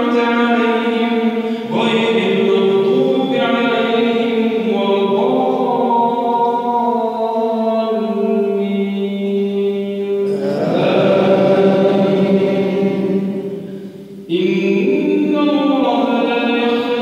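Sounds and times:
man chanting melodic recitation: 0:00.0 - 0:17.0.

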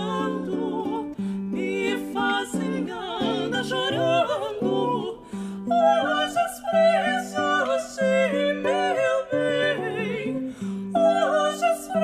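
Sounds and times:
plucked spinet and guitar: 0:00.0 - 0:12.0
women singing with vibrato: 0:00.0 - 0:12.0.

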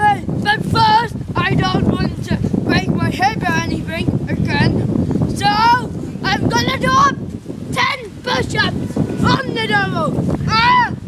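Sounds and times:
wind rumble on microphone: 0:00.0 - 0:11.0
boy yelping: 0:05.4 - 0:11.0.

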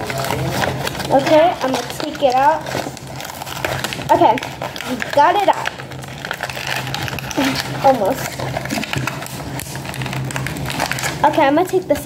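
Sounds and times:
cardboard and plastic crackling: 0:00.0 - 0:12.0
steady low hum: 0:00.0 - 0:12.0.

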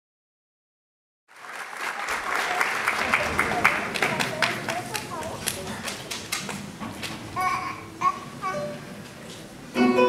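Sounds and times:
audience applause: 0:01.3 - 0:06.7
faint voices in a hall: 0:01.4 - 0:10.0.

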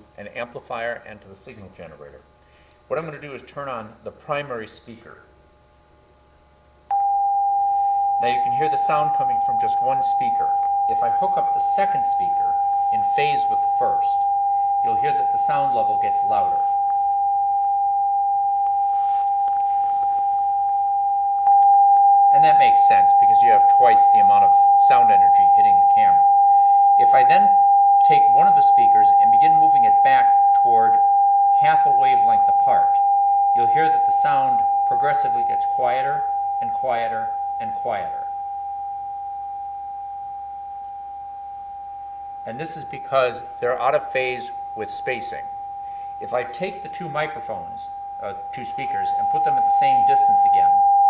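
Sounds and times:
pure sine tone: 0:05.2 - 0:51.0.

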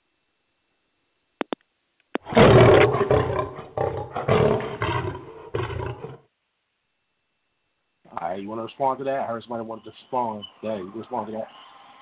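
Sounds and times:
lion roaring: 0:02.2 - 0:06.3.

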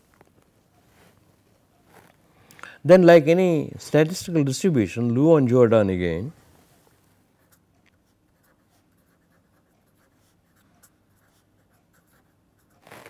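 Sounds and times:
pen scratching on paper: 0:07.4 - 0:13.0.

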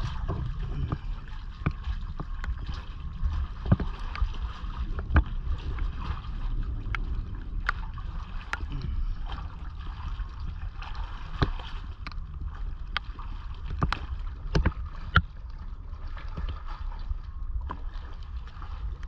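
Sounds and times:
water lapping around boat: 0:00.0 - 0:19.0
wind rumble on microphone: 0:00.0 - 0:19.0.

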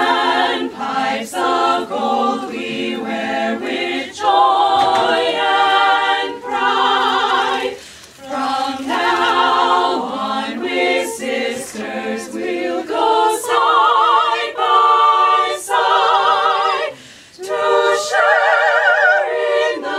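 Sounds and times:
women singing in harmony: 0:00.0 - 0:19.9.

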